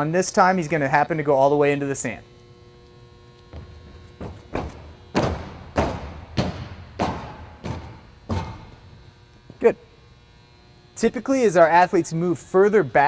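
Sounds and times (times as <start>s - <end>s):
heavy footfalls on running track: 3.4s - 9.1s.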